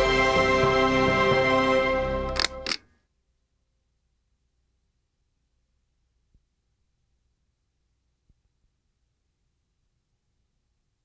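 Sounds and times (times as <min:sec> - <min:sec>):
logo sting music: 0:00.0 - 0:02.6
sharp shutter-like clicks: 0:02.3 - 0:02.9.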